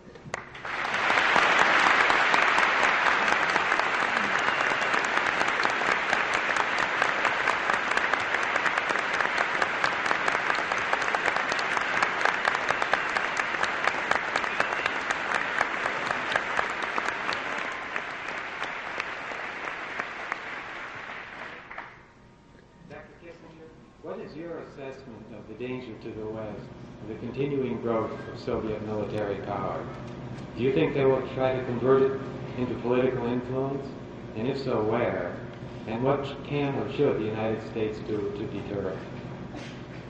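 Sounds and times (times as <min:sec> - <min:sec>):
audience applauding: 0:00.3 - 0:22.1.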